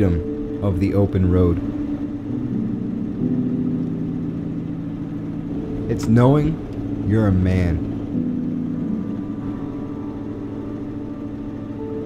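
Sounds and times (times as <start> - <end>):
truck engine droning: 0.0 - 12.0.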